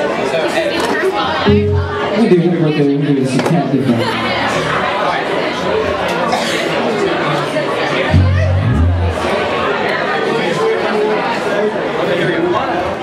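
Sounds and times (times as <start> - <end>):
restaurant crowd chatter: 0.0 - 13.0
band instruments playing loose notes: 1.5 - 2.9, 8.1 - 9.6.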